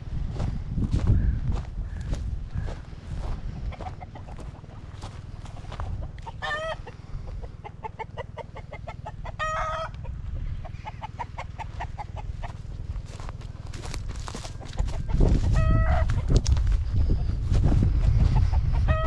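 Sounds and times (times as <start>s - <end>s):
chickens clucking: 0.3s - 19.0s
low rumble: 12.7s - 19.0s.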